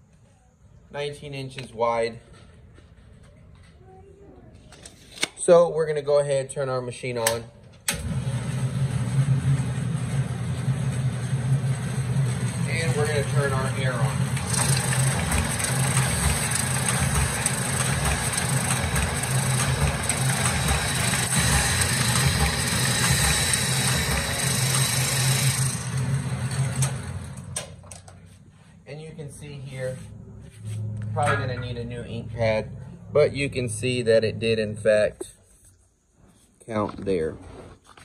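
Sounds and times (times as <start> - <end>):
machine steady hum: 7.9 - 36.3
sheets feeding through machine: 8.0 - 27.6.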